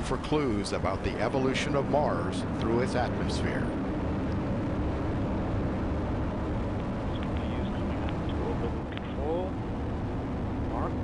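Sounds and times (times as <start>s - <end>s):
rocket engine deep rumble: 0.0s - 11.0s.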